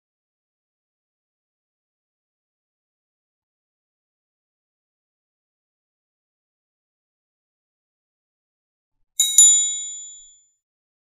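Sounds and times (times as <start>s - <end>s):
notification bell dings: 9.2s - 10.4s.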